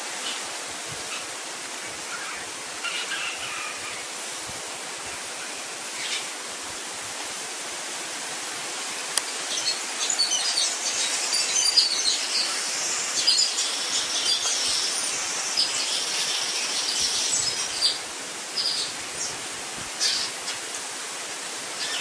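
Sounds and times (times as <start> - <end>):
steady hiss: 0.0 - 22.0
birds chirping: 0.1 - 4.3, 5.0 - 6.4, 8.8 - 19.4, 20.0 - 20.7, 21.7 - 22.0.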